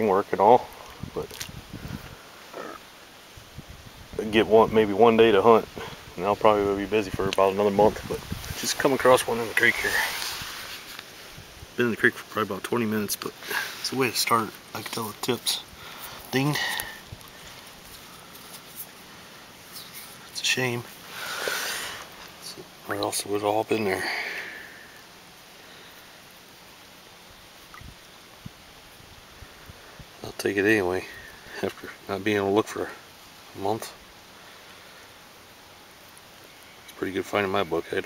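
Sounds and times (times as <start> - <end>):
creek water over gravel: 0.0 - 3.4, 4.1 - 38.0.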